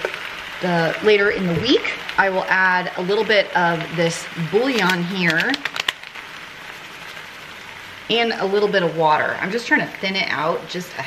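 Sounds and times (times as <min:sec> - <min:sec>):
rice sizzling in skillet: 0:00.0 - 0:10.1.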